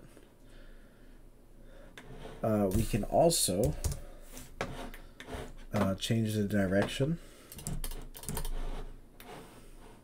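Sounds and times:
keyboard typing: 3.6 - 4.0, 7.5 - 8.8.

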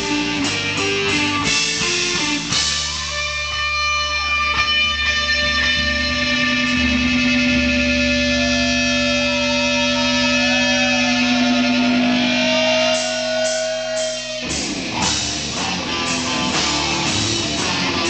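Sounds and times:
distorted electric guitars and bass: 0.0 - 18.0.

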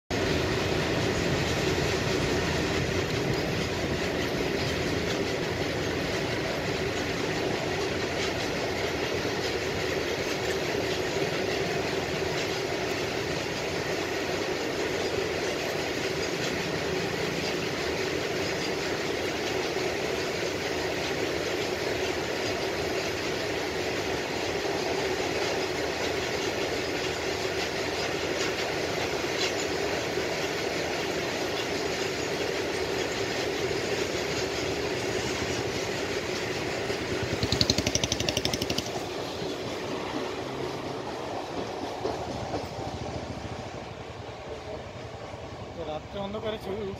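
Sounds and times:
clatter of train wheels: 0.1 - 46.9
train rumbling on track: 0.1 - 46.9.

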